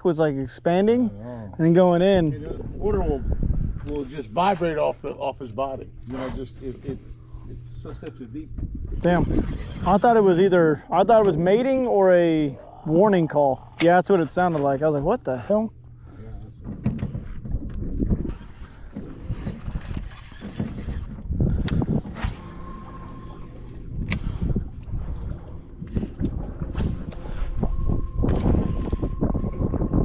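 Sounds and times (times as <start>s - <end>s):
water lapping at metal boat: 1.1s - 30.0s
wind rumbling on microphone: 1.8s - 10.4s, 16.0s - 30.0s
fishing reel whirring and clicking: 8.9s - 10.3s, 17.6s - 29.6s.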